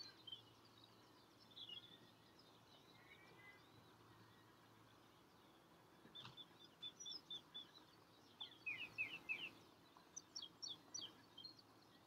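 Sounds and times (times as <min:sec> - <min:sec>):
small songbirds chirping: 0:00.0 - 0:12.0.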